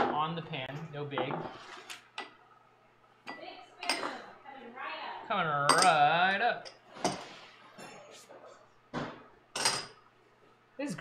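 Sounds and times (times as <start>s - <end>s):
kitchen utensils clanking: 3.3s - 4.2s, 5.7s - 8.2s, 9.5s - 10.0s.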